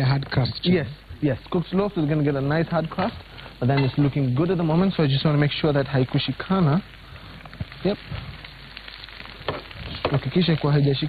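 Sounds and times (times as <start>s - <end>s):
omelette sizzling in a pan: 0.0s - 11.0s.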